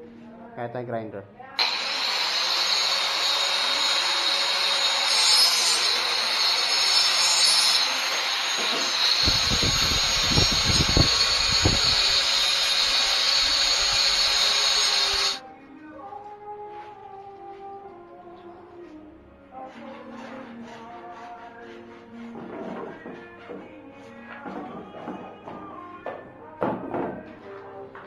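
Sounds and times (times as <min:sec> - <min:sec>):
angle grinder grinding plastic pipe: 0:01.6 - 0:15.4.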